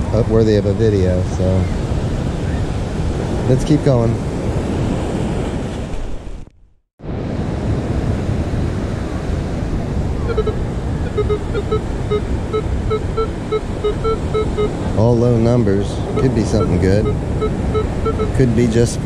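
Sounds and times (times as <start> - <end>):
wind on microphone: 0.0 - 19.0
surf: 7.1 - 19.0
metal detector low beeps: 10.2 - 18.8.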